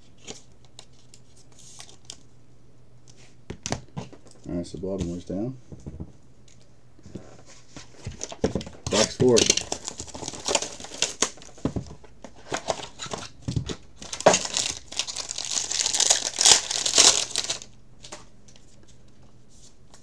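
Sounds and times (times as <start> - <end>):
plastic wrapping crinkling: 8.1 - 11.6, 14.0 - 18.2.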